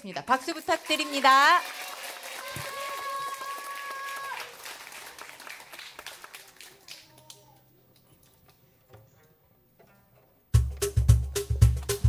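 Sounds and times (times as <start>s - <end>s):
audience applauding: 0.0s - 8.4s
person cheering: 2.3s - 4.5s.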